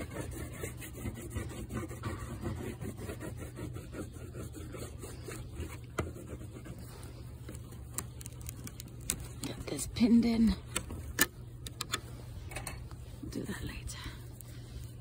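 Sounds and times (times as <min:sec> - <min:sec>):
crayon rubbing on paper: 0:00.0 - 0:06.8.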